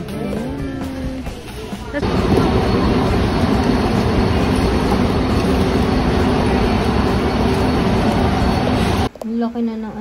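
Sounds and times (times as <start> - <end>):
busy store din: 0.0 - 10.0.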